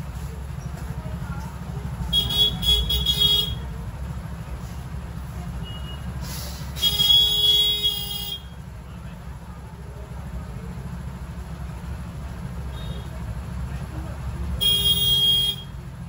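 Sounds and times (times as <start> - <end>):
low traffic rumble: 0.0 - 16.0
vehicle horn honks: 2.1 - 3.7, 6.8 - 8.6, 14.6 - 15.8.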